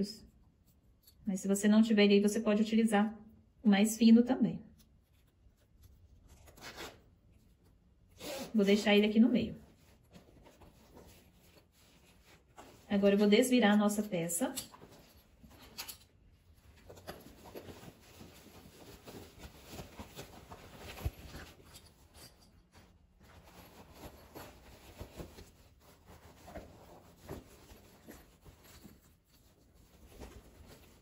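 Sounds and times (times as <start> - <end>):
fabric rustling: 4.8 - 13.4, 14.7 - 31.0.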